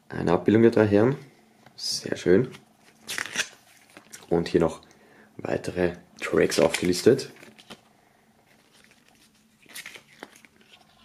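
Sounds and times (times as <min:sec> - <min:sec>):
pages turning: 0:02.4 - 0:04.3, 0:06.4 - 0:11.0
paper booklet rustling: 0:02.4 - 0:04.3, 0:06.3 - 0:11.0.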